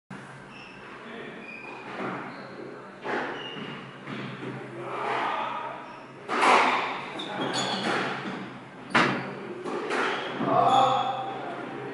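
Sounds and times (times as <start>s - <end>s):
shoes squeaking on wooden floor: 1.4s - 11.0s.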